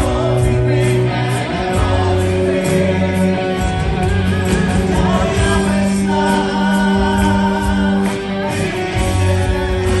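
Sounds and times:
bass: 0.0 - 10.0
electric guitars: 0.0 - 10.0
percussion: 0.0 - 10.0
person singing: 0.0 - 10.0.

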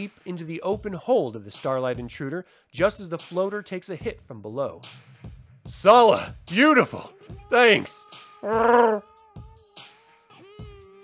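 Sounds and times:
creature growl: 8.4 - 9.0.

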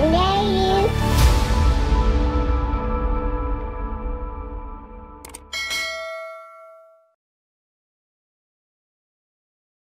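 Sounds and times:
bright bell ding: 5.4 - 7.2.

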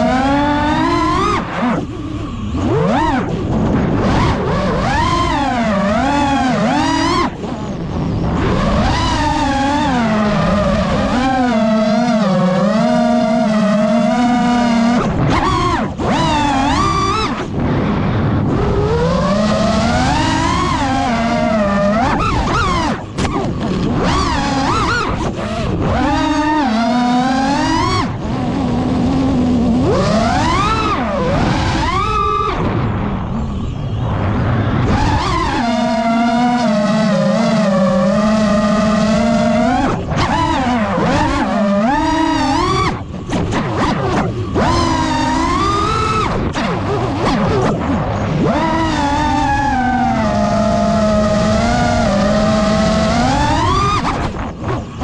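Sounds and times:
drone motors whining: 0.0 - 55.0.

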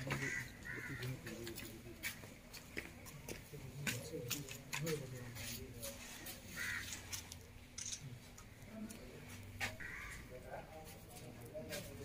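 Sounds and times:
crow cawing: 0.0 - 1.3, 6.5 - 7.1, 9.8 - 10.3.

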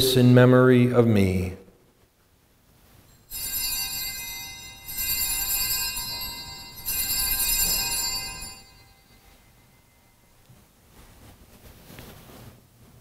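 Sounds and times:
altar bells ringing: 3.1 - 10.4.

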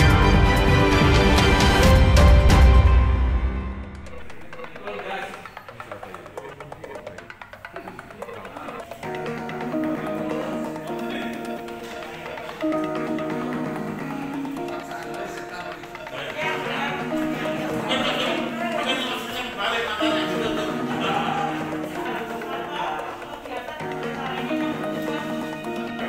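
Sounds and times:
background music with held notes: 0.0 - 26.0
indistinct talk: 4.0 - 26.0.

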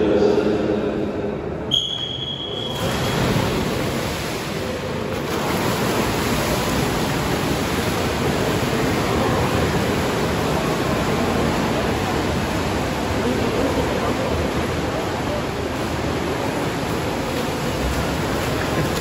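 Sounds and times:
swimmers splashing: 2.2 - 19.0.

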